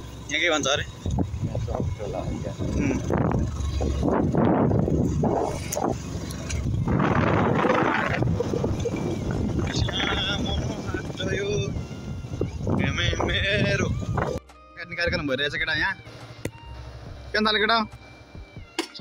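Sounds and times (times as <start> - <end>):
wind buffeting microphone: 0.8 - 14.4.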